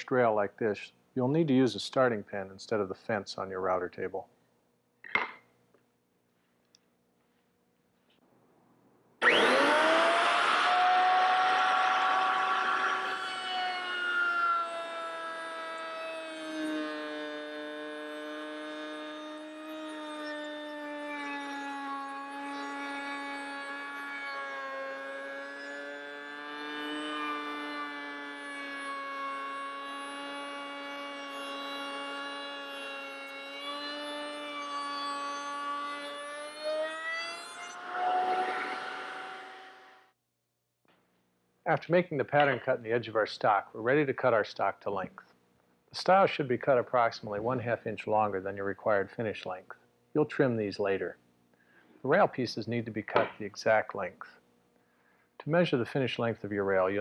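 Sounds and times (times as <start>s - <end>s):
router bit cutting wood: 9.2s - 40.1s
router motor whining: 9.2s - 40.2s.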